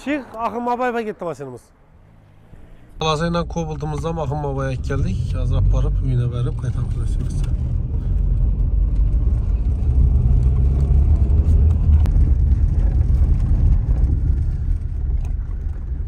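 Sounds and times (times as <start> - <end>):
car driving on dirt road: 0.0 - 16.0.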